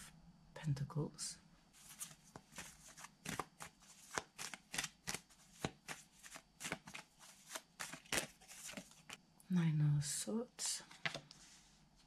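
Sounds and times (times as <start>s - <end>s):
cards being shuffled: 1.8s - 9.2s.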